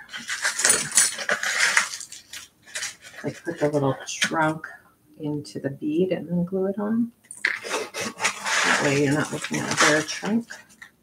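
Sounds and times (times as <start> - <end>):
jewelry and beads rattling in box: 0.0 - 3.7.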